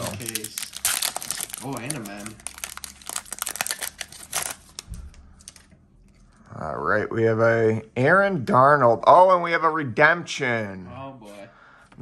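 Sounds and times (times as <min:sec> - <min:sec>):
foil wrapper crinkling: 0:00.0 - 0:05.7.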